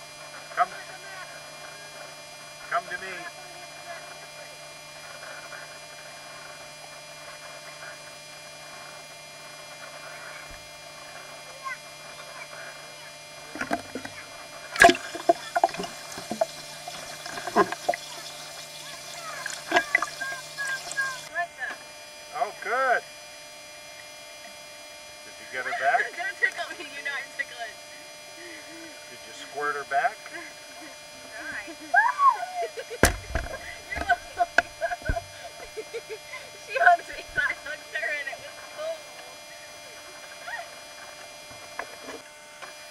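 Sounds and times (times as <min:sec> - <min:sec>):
steady low hum: 0:00.0 - 0:42.9
pool water splashing: 0:13.5 - 0:21.3.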